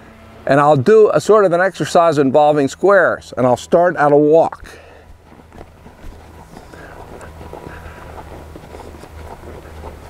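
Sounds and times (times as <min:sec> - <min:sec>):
low steady hum: 0:00.0 - 0:10.0
hoof footfalls on sand: 0:04.6 - 0:10.0.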